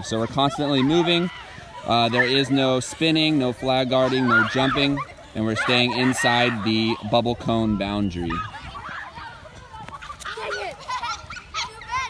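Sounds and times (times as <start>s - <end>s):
children shouting and squealing: 0.0s - 12.0s.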